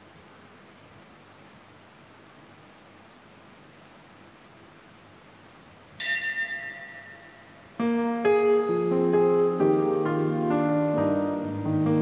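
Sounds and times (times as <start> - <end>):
faint room tone hiss: 0.0 - 12.0
bell ringing: 6.0 - 7.8.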